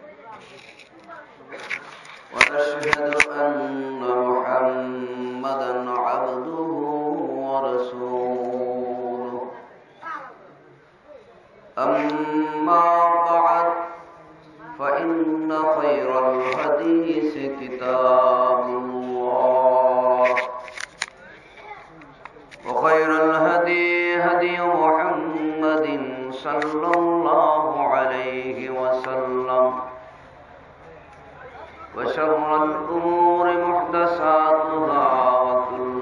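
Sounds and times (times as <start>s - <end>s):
man chanting: 2.2s - 9.7s, 11.7s - 20.8s, 22.6s - 30.1s, 31.4s - 36.0s.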